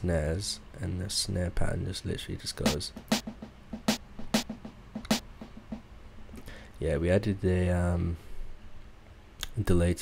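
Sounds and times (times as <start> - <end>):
snare hits with delay repeats: 2.6 - 5.9.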